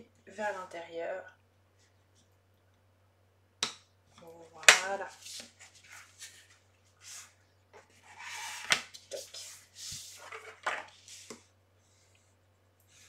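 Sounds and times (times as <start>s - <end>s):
paper rustling and sliding: 5.2s - 11.4s
bone folder rubbing paper: 8.0s - 10.2s.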